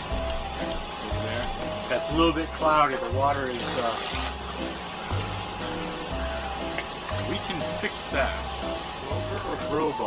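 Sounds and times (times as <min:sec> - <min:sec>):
background music with bass notes: 0:00.0 - 0:10.0.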